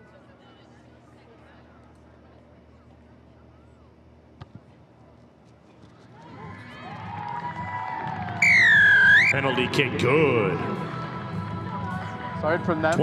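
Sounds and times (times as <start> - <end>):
spectator noise: 6.2 - 11.1.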